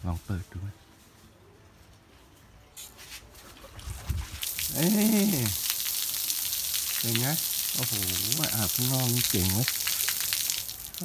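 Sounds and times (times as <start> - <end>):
shower water spraying onto ground: 4.3 - 11.0.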